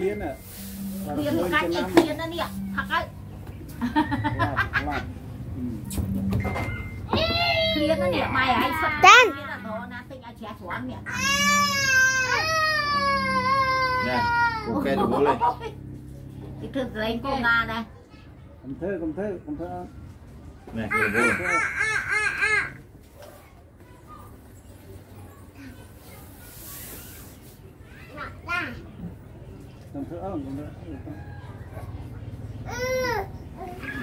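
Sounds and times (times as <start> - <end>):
voices: 0.0 - 34.0
child's high-pitched voice: 9.0 - 9.4
child crying wail: 11.1 - 14.8.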